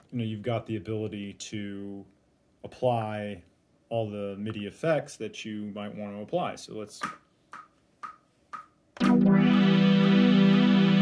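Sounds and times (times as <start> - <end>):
metronome clicks: 7.0 - 10.7
sustained synthesizer chord: 9.0 - 11.0.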